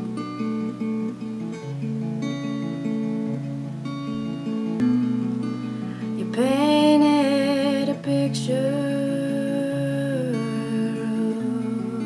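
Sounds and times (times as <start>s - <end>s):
guitar: 0.0s - 12.0s.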